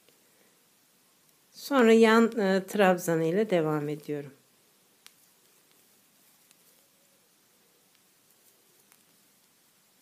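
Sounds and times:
faint ticks: 0:05.0 - 0:06.9.

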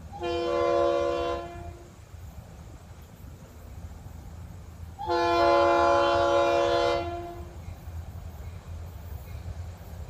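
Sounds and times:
train air horn: 0:00.0 - 0:01.9, 0:05.0 - 0:07.6.

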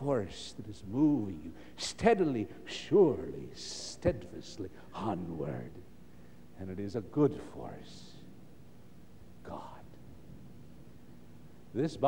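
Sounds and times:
faint low hum: 0:00.0 - 0:12.0
man speaking softly: 0:09.4 - 0:10.0.

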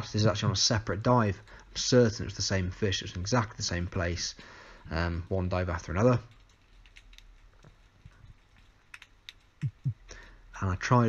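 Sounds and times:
faint clicks: 0:06.3 - 0:10.2.

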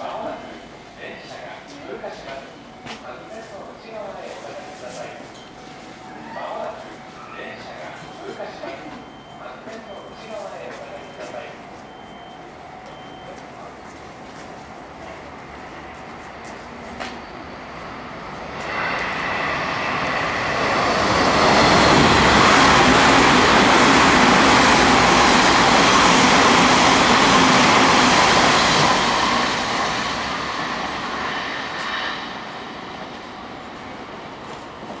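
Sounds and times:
electric train passing at speed: 0:14.2 - 0:35.0.

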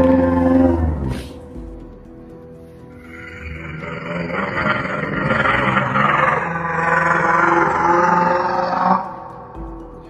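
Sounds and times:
creature roar: 0:03.0 - 0:09.1.

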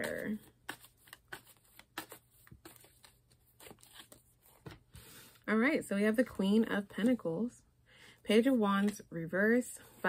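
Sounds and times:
cards being shuffled: 0:00.0 - 0:05.3.

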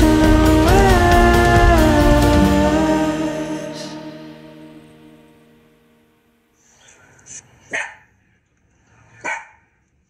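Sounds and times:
small dog barking: 0:07.7 - 0:08.1, 0:09.2 - 0:09.7.

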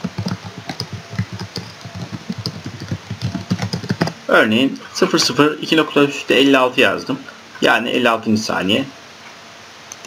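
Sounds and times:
computer keyboard typing: 0:00.0 - 0:04.2.

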